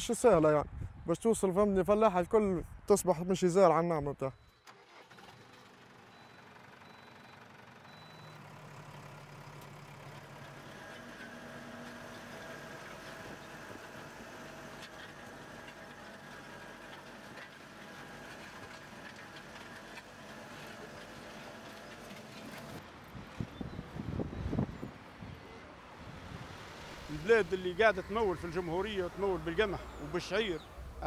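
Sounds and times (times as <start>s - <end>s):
tractor diesel engine running: 4.4s - 31.0s.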